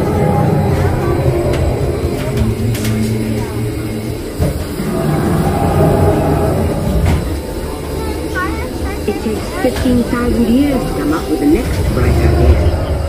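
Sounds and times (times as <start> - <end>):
ride vehicle rumbling on track: 0.0 - 13.0
sustained low tones soundtrack: 0.0 - 13.0.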